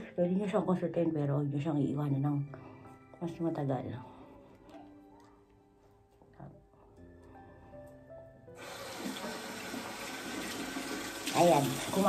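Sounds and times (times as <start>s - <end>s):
water running into sink: 8.6s - 12.0s.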